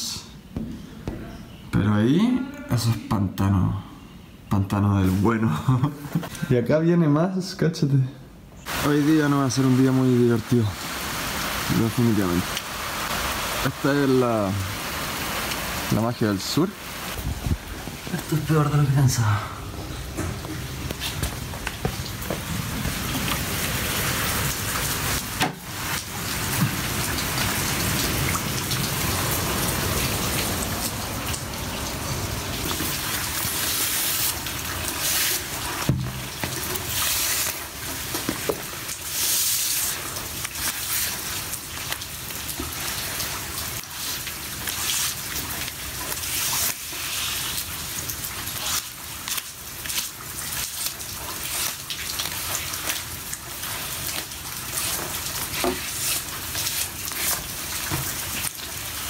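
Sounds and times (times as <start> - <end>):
rain and running water splashing: 8.6 - 59.0
water drips: 8.7 - 18.7, 19.5 - 59.0.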